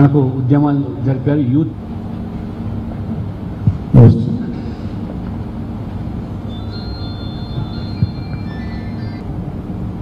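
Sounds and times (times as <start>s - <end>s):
low room rumble: 0.0s - 10.0s
faint high tones: 6.4s - 9.2s.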